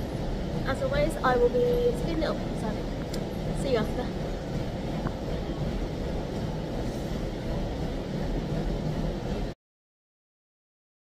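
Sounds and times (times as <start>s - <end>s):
gym room rumble and hiss: 0.0s - 9.6s.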